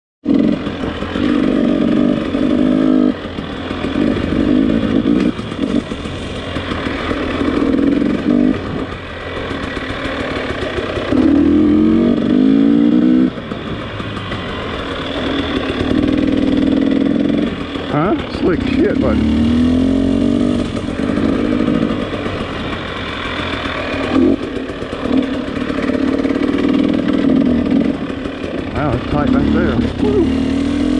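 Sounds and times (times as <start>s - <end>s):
dirt bike engine revving: 0.2s - 30.9s.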